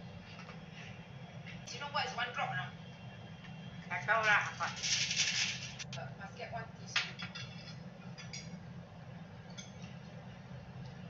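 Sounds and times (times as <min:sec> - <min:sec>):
steady low hum: 0:00.0 - 0:11.0
tableware clinking: 0:07.0 - 0:08.6, 0:09.5 - 0:09.9.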